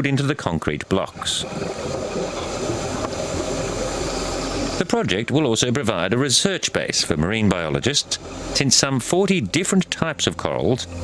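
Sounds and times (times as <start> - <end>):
low hum: 0.8 - 11.0
steady rushing noise: 1.2 - 5.4.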